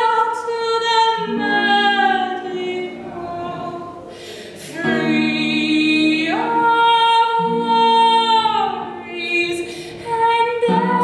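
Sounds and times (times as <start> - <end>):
guitar: 0.0 - 11.0
woman singing: 0.0 - 11.0.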